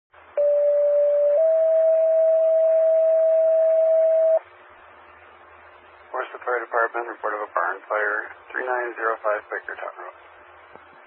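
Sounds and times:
faint radio hiss: 2.0s - 11.0s.

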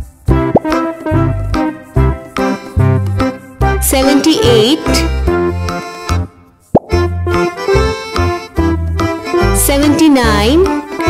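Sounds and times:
upbeat children's music: 0.0s - 11.0s
sliding-pitch pop effect: 0.5s - 0.8s, 6.7s - 7.1s.

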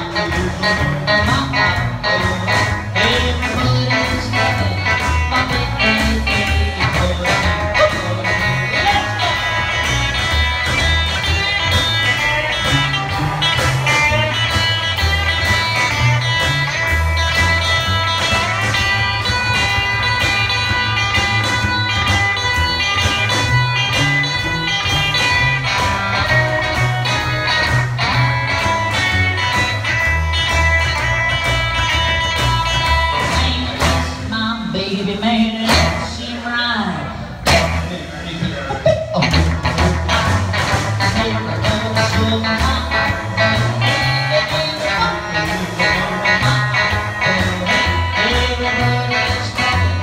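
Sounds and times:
electric guitar lead: 0.0s - 50.0s
upright bass walking line: 0.0s - 50.0s.

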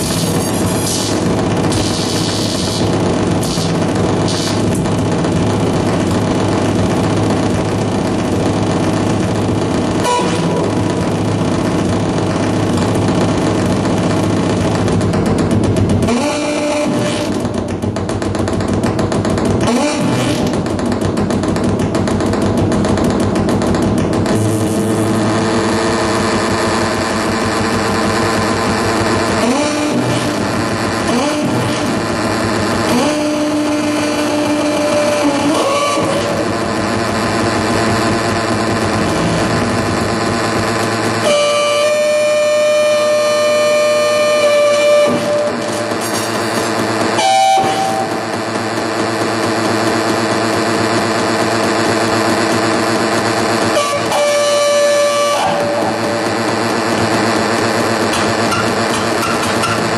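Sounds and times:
dense electronic buzzing drone: 0.0s - 59.9s.

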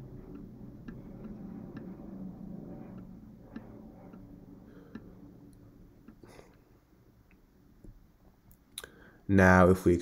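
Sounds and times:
stylus clicking on drawing tablet: 0.0s - 6.3s
faint room hum: 0.0s - 10.0s.

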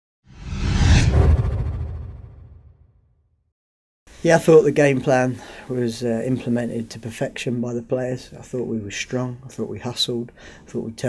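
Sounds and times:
low rumble: 0.3s - 3.0s
whoosh: 0.3s - 3.1s.

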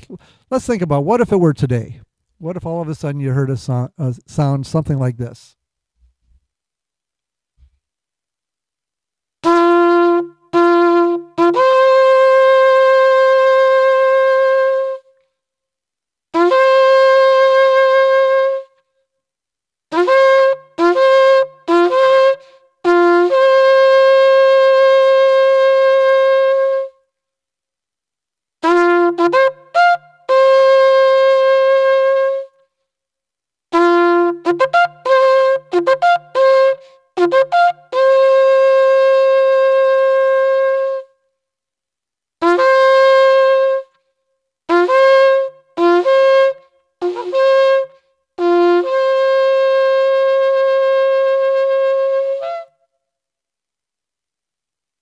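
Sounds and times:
shofar blasts: 9.4s - 15.1s, 16.4s - 18.8s, 19.9s - 27.0s, 28.6s - 32.6s, 33.7s - 41.1s, 42.4s - 44.0s, 44.7s - 52.8s.

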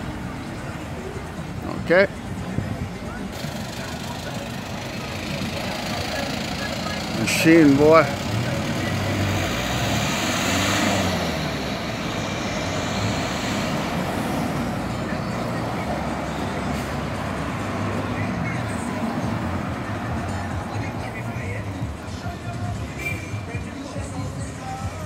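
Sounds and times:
cars driving past: 0.0s - 24.8s.

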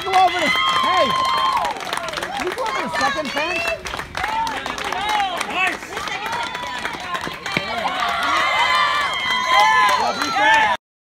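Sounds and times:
people clapping: 0.0s - 10.8s
children shouting and cheering: 6.0s - 10.8s.

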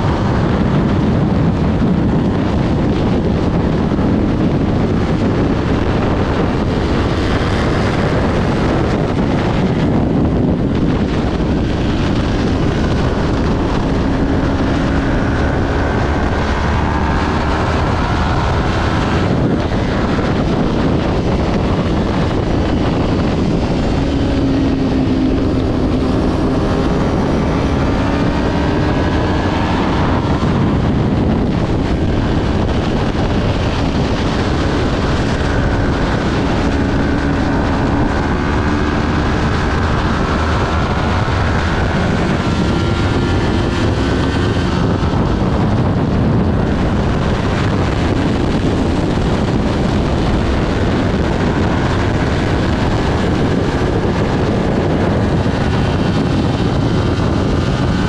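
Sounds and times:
heavy wind noise: 0.0s - 58.0s
motorcycle engine at racing revs: 0.0s - 58.0s.

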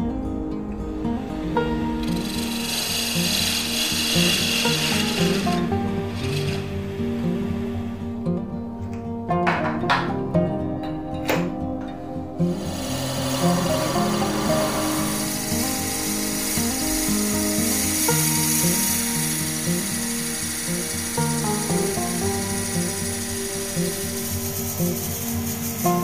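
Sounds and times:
background music: 0.0s - 26.0s
drill cutting hiss in wood: 1.4s - 8.2s, 12.4s - 26.0s.

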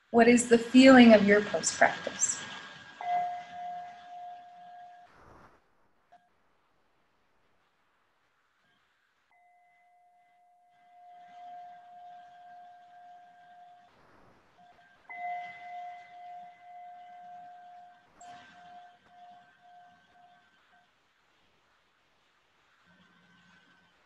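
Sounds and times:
singing bowl ringing: 0.8s - 5.1s, 9.3s - 13.9s, 15.1s - 20.8s.

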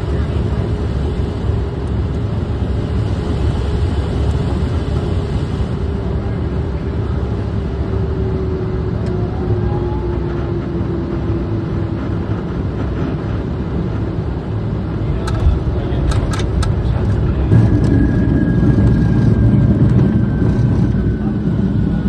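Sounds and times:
aircraft engine rumble: 0.0s - 22.0s
cockpit airflow: 0.0s - 22.0s.

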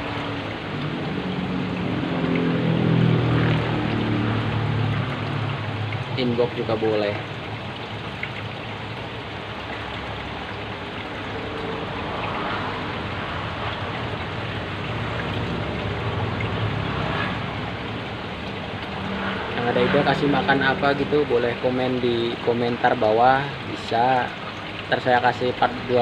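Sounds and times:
aquarium water bubbling: 0.0s - 26.0s.

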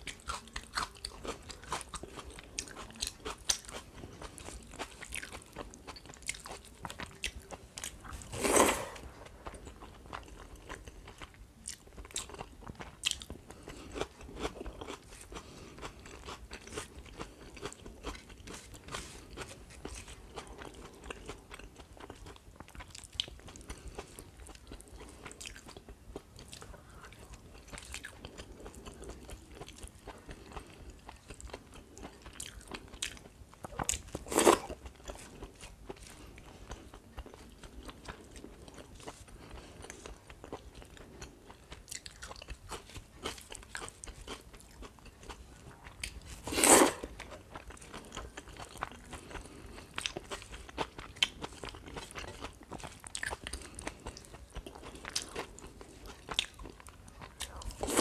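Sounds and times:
person chewing: 0.0s - 58.0s
loud mouth sound: 8.3s - 9.1s.

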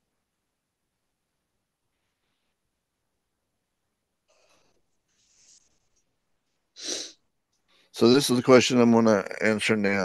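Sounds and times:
person breathing close to microphone: 6.8s - 7.2s.

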